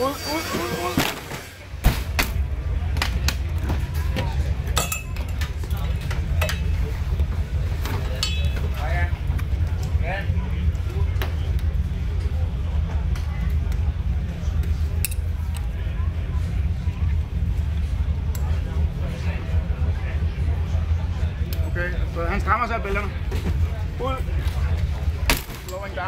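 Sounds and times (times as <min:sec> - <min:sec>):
steady low rumble: 0:01.4 - 0:26.0.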